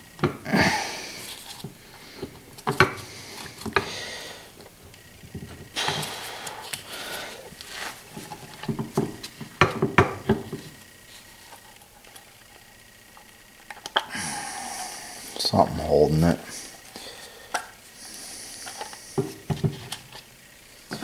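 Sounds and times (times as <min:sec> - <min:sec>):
scraping and rustling: 0:05.3 - 0:09.6.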